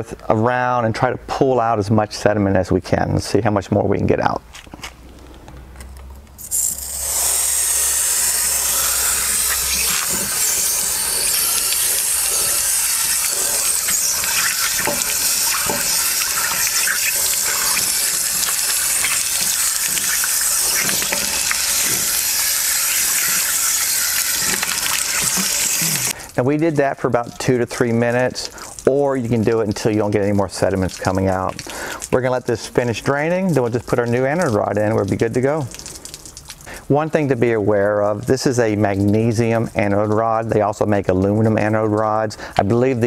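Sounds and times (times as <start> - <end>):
water rushing and pouring: 6.4 - 36.8.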